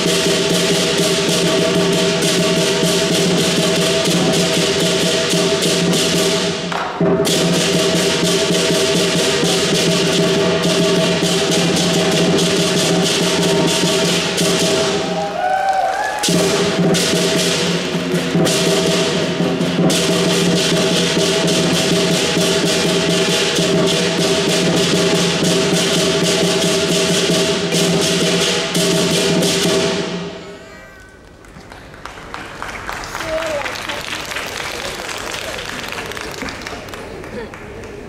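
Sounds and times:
large drum beaten rapidly: 0:00.0 - 0:15.3, 0:16.2 - 0:30.2
cymbals crashing: 0:00.0 - 0:31.2.

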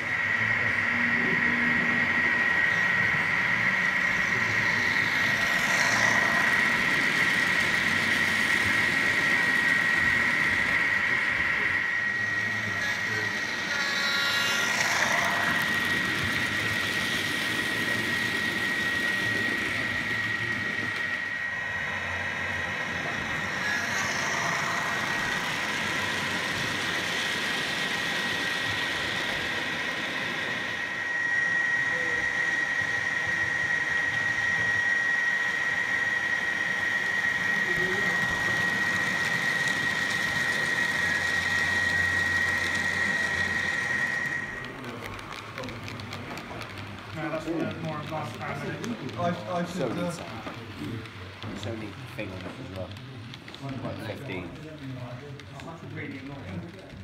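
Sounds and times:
model train running with whine: 0:00.0 - 0:57.0.

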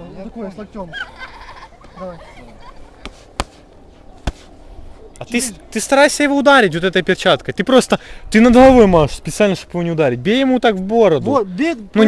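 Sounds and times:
boxing gloves punching focus mitts: 0:03.0 - 0:04.5.

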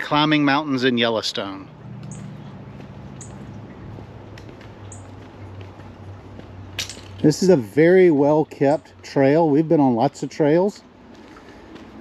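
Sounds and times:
small bird chirping: 0:01.8 - 0:04.0, 0:04.8 - 0:05.5.

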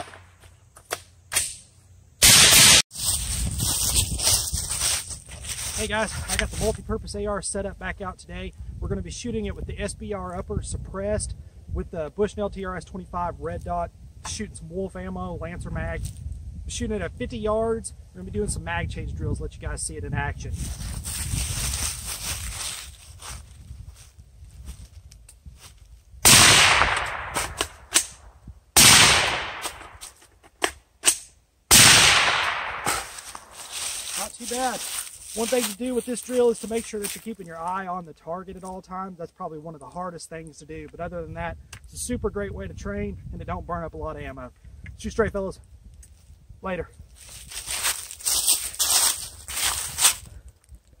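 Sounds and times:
footsteps on dry leaves: 0:02.8 - 0:06.8, 0:20.5 - 0:26.0, 0:32.8 - 0:37.8, 0:47.1 - 0:50.9
suppressed rifle shots: 0:26.3 - 0:28.1, 0:28.8 - 0:30.0, 0:31.7 - 0:33.5
sharp clicks and cracks: 0:26.3 - 0:33.5.

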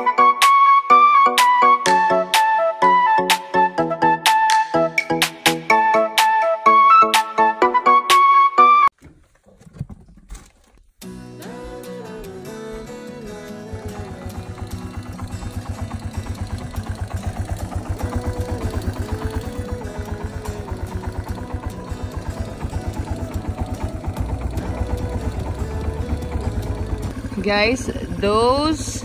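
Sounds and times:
background music: 0:00.0 - 0:08.9, 0:11.0 - 0:29.0
motorbike engine running: 0:11.1 - 0:29.0.

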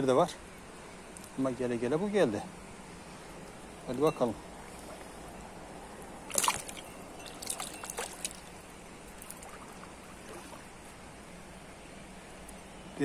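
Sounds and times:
stream running: 0:00.0 - 0:13.0
water dripping: 0:06.2 - 0:10.7
fish splashing in water: 0:06.2 - 0:10.8.

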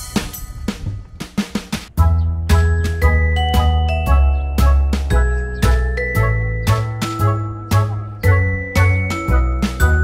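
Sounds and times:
bell-like tune: 0:02.6 - 0:10.0.

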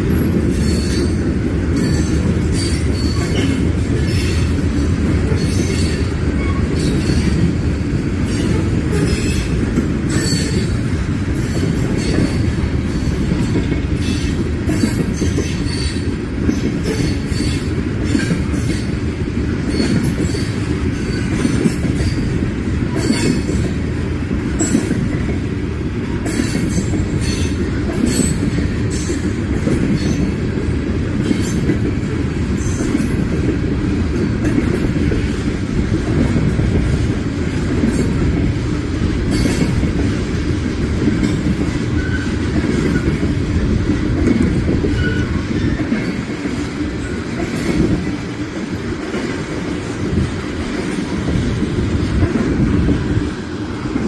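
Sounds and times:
freight train rumble: 0:00.0 - 0:54.0
steel wheels clattering on rails: 0:00.0 - 0:54.0.

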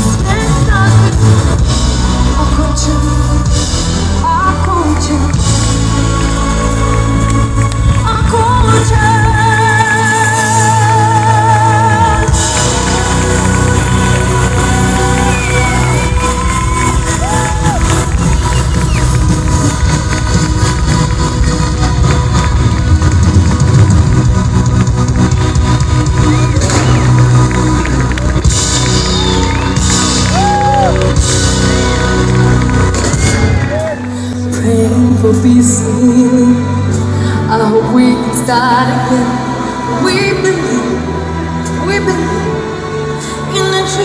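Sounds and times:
live band playing bass-heavy music: 0:00.0 - 0:40.4
audience cheering and whooping: 0:12.2 - 0:24.2, 0:26.0 - 0:34.2.

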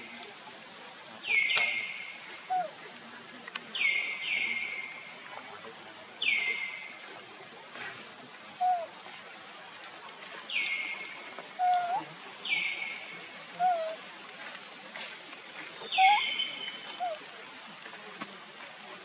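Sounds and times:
bird calling: 0:01.3 - 0:02.8, 0:08.6 - 0:09.0, 0:10.5 - 0:14.0, 0:15.8 - 0:17.2.

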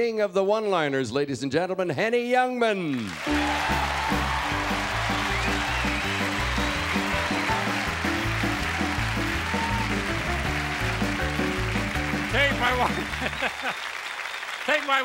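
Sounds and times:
audience applause: 0:02.9 - 0:15.0
band playing walk-on music: 0:03.2 - 0:13.8.

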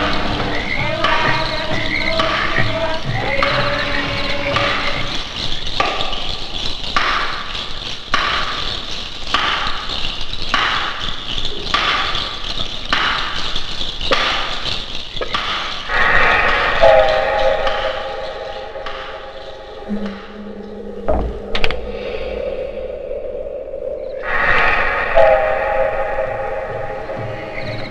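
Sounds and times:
held chord of steady tones: 0:00.0 - 0:06.7, 0:15.9 - 0:27.9
pulse of rattling beats: 0:00.0 - 0:22.6, 0:23.4 - 0:27.9.

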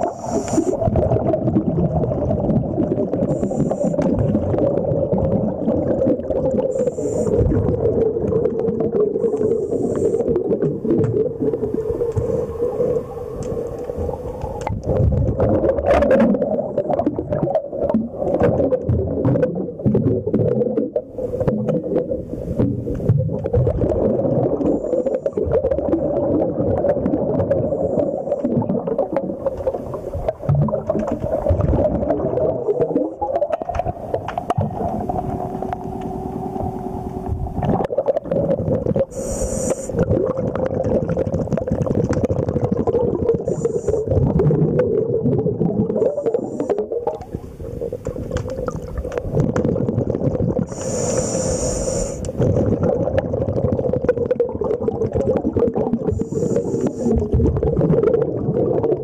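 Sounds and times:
underwater low drone: 0:00.0 - 0:59.0
small underwater clicks and knocks: 0:08.3 - 0:11.4, 0:12.0 - 0:23.8, 0:29.0 - 0:32.2, 0:33.3 - 0:43.6, 0:47.0 - 0:51.0.

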